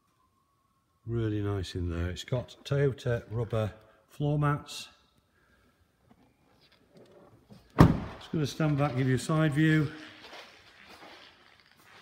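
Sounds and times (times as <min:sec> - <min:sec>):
car door shutting thud: 0:07.8 - 0:08.3.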